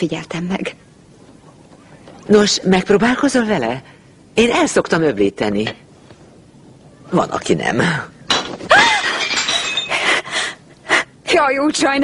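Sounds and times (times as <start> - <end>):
ceramic plate shattering on floor: 8.3 - 10.1
pieces ringing and clattering: 8.3 - 10.1.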